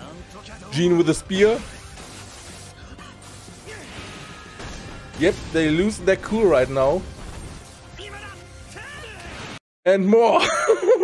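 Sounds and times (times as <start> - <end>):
dramatic background music: 0.0 - 9.6
battle crashes and impacts: 3.9 - 7.9.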